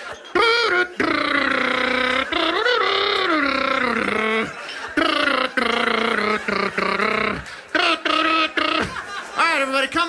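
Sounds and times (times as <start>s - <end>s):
man vocally imitating trumpet: 0.3s - 9.0s.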